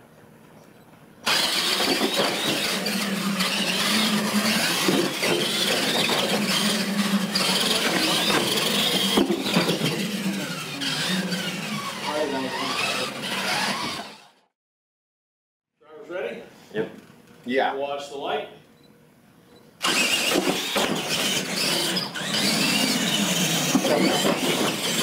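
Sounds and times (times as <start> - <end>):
electric motors whining: 1.2 - 14.5, 19.8 - 25.0
tyre noise on tile: 1.3 - 10.2, 22.9 - 25.0.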